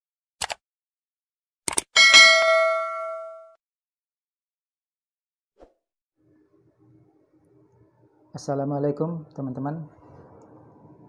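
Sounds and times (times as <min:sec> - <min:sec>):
notification bell ding: 0:02.0 - 0:03.6.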